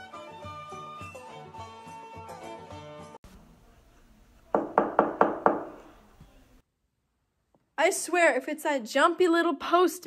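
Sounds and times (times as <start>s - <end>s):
knocks on a door: 4.5s - 5.8s.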